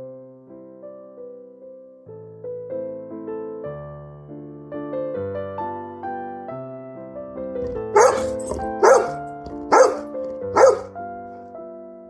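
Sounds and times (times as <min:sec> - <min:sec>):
soft piano music: 0:00.0 - 0:12.0
dog barking: 0:07.6 - 0:10.9.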